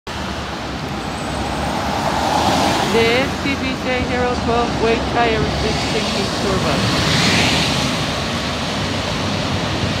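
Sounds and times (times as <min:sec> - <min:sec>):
road traffic: 0:00.1 - 0:10.0.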